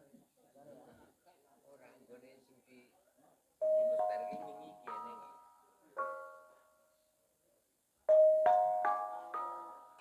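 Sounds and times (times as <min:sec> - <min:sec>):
ringing gamelan notes: 0:03.6 - 0:07.0, 0:08.1 - 0:10.0.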